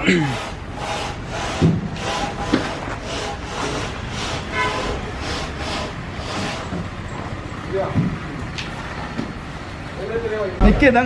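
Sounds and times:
tiles scraping against each other: 0.3 - 6.9.

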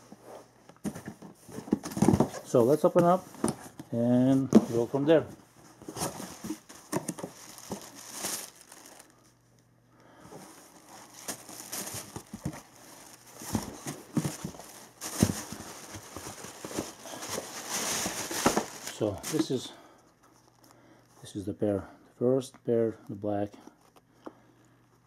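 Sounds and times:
tissue paper crinkling: 5.9 - 9.3, 10.5 - 19.6.

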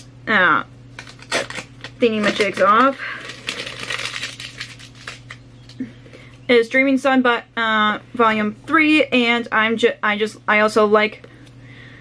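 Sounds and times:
book handling clicks and rustles: 1.0 - 5.8.

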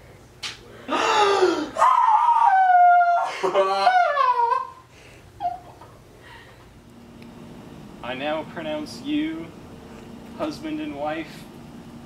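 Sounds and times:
person gasping: 0.9 - 1.8
person wailing: 0.9 - 4.8
person laughing: 3.2 - 4.8.

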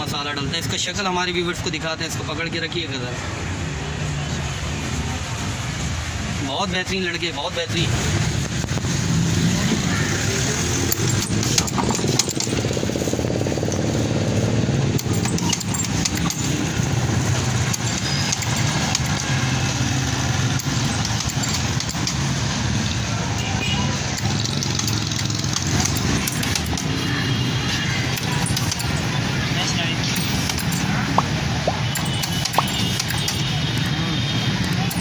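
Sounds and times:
street traffic rumble: 0.0 - 35.0.

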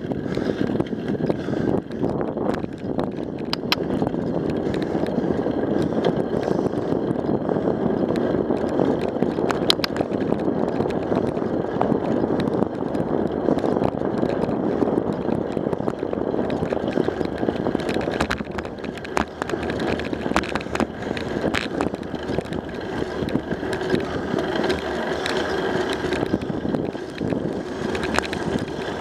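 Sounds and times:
bicycle tyre rumble on asphalt: 0.0 - 29.0
small clicks and rattles: 0.0 - 29.0.

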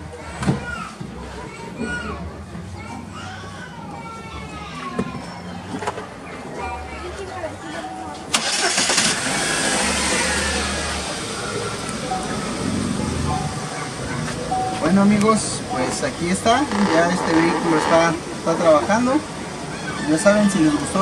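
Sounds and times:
car engine starting and idling: 8.3 - 19.6.

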